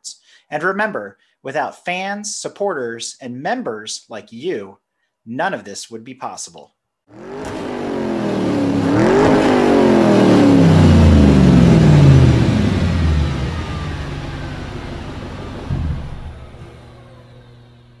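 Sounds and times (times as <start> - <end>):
car engine revving: 7.1 - 17.4.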